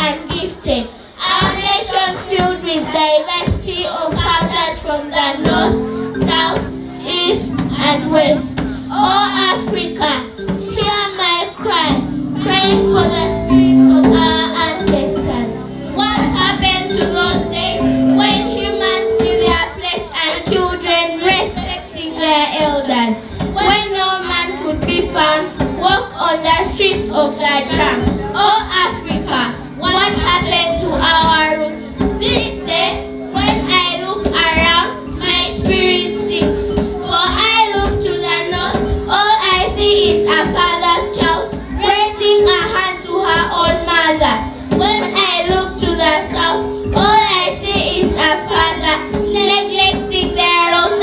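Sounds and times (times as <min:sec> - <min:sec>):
children singing with accompaniment: 0:00.0 - 0:51.0
instrumental backing music: 0:00.0 - 0:51.0.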